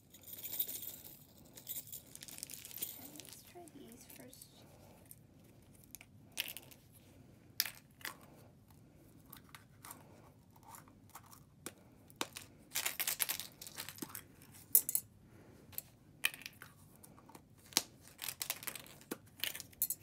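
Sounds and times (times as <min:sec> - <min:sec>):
beads rattling in plastic egg: 0:00.0 - 0:04.5, 0:12.2 - 0:14.8.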